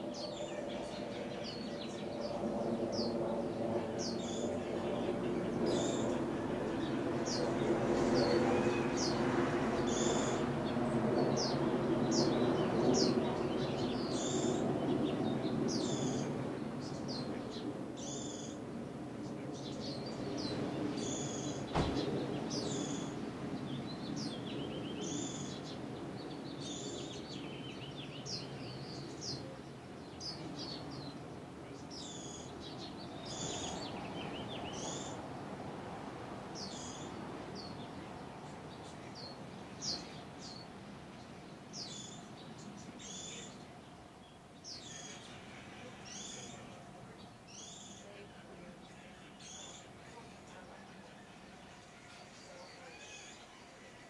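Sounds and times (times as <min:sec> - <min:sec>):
finches chirping: 0:00.0 - 0:18.6, 0:19.6 - 0:35.2, 0:36.6 - 0:54.0
sharp knock: 0:21.7 - 0:22.1.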